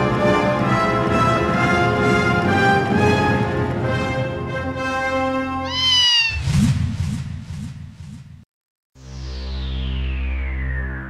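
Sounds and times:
cat meow rising and falling: 5.6 - 6.4.

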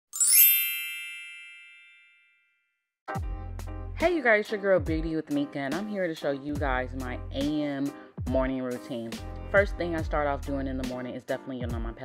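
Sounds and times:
sparkling chime ding: 0.2 - 2.5.

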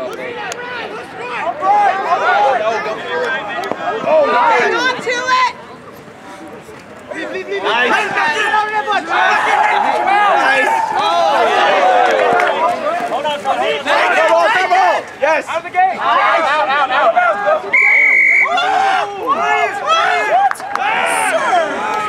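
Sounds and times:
men shouting: 7.6 - 15.0
referee's whistle blast: 17.7 - 18.6.

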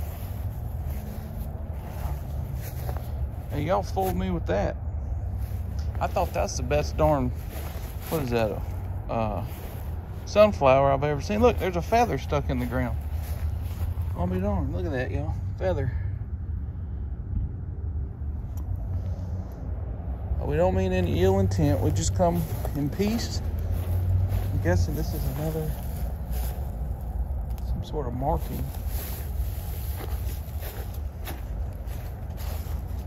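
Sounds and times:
footsteps on grass: 0.0 - 4.6, 5.2 - 15.3, 20.4 - 33.0
low outdoor rumble: 0.0 - 33.0.

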